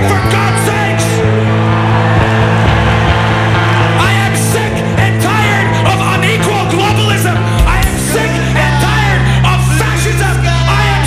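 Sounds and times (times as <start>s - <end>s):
metal band playing: 0.0s - 11.0s.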